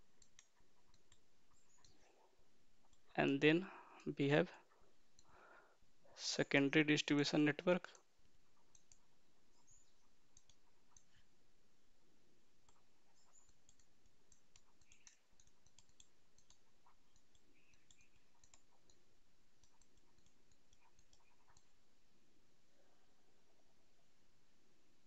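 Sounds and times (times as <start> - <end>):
stylus tapping on pen tablet: 12.6 - 21.8.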